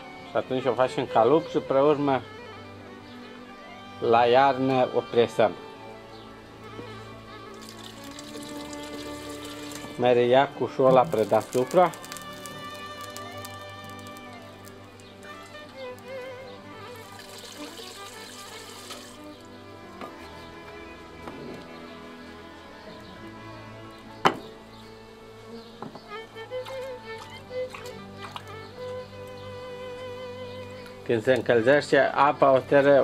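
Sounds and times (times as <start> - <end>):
instrumental background music: 0.0 - 33.0.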